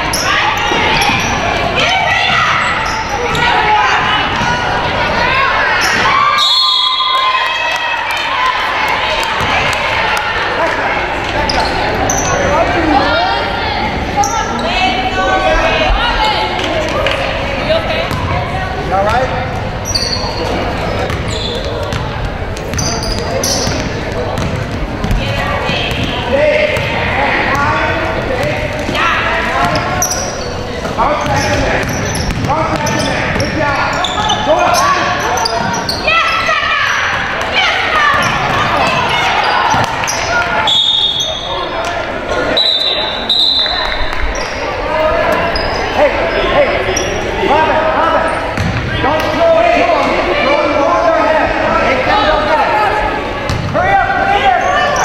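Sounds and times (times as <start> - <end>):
voices calling out and talking: 0.0 - 55.0
basketball bouncing on hardwood: 48.6 - 48.8.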